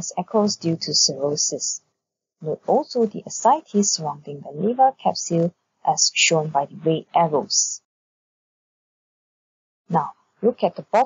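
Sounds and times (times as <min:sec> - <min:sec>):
narrator speaking: 0:00.0 - 0:01.8, 0:02.4 - 0:07.8, 0:09.9 - 0:11.0.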